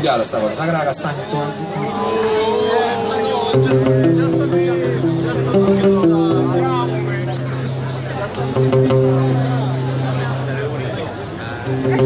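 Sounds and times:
audience voices talking: 0.0s - 12.0s
low note through sound system: 1.8s - 12.0s.

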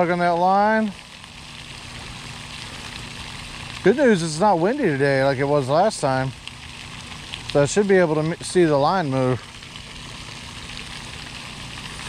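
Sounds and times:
fountain water hissing and splashing: 0.0s - 12.0s.

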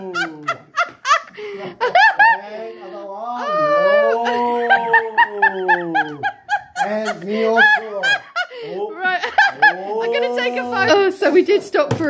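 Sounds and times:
woman laughing hard: 0.0s - 2.5s, 3.4s - 10.2s.

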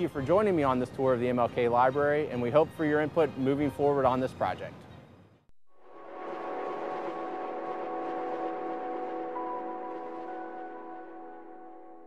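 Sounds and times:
sustained synth chord: 5.7s - 12.0s.

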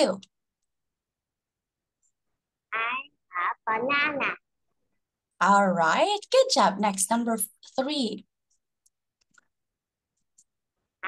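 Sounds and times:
woman speaking: 0.0s - 0.3s, 5.4s - 8.3s.

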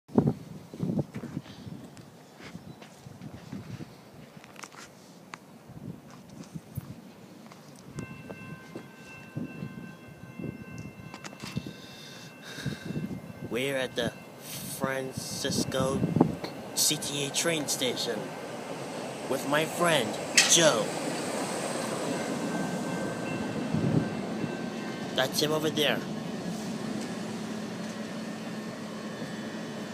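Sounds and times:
rail car running hum: 0.2s - 29.9s
train approaching: 6.8s - 29.9s
steady high ringing: 7.9s - 29.9s.

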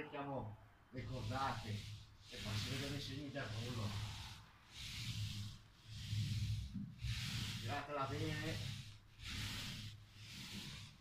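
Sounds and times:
paint roller rolling on ceiling: 1.0s - 11.0s.

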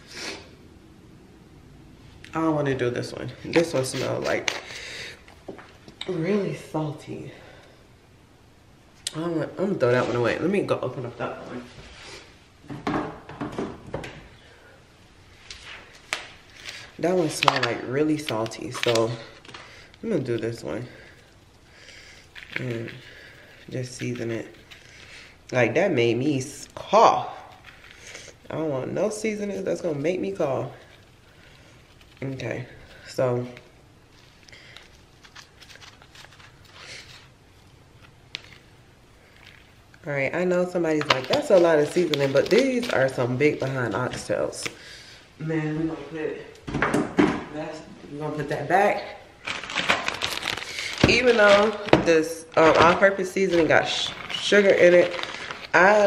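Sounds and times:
kitchen items knocking and clattering: 12.6s - 14.3s, 46.7s - 47.6s, 50.9s - 53.1s.

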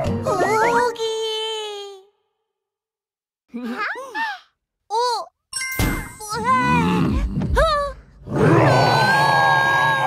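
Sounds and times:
cartoon dinosaur roar: 8.2s - 10.0s.

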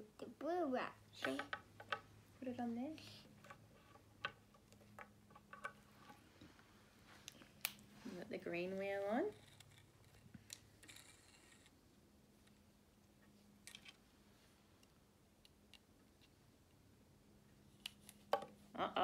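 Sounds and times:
toy blocks clicking and tapping: 1.2s - 2.0s, 3.4s - 5.8s.

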